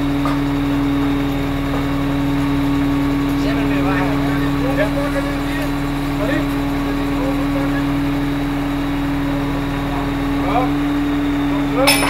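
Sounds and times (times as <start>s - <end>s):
crane engine humming: 0.0s - 12.0s.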